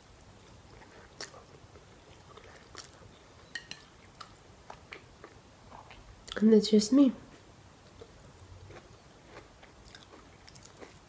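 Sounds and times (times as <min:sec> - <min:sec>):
chewing noodles: 0:00.4 - 0:03.1, 0:07.9 - 0:11.0.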